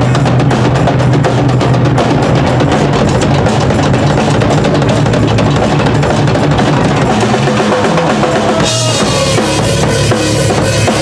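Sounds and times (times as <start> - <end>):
thrash metal band playing: 0.0 - 11.0.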